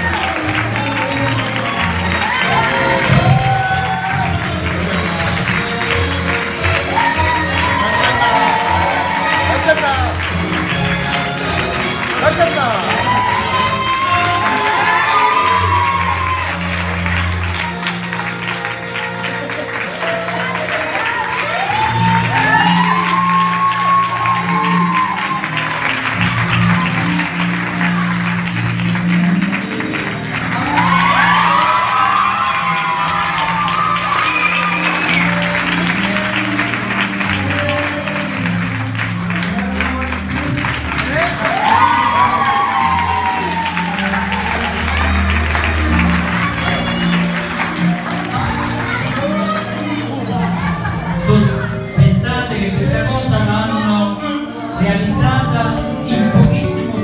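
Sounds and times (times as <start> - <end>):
music with bass line: 0.0 - 20.7, 21.5 - 57.0
applause: 0.0 - 50.7.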